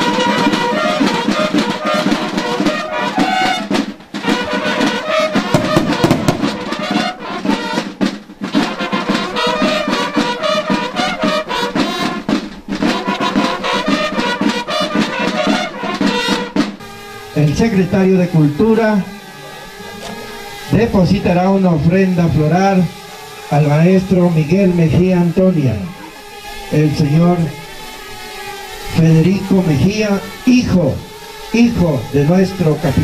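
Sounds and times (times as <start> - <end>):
brass band playing: 0.0 - 33.0.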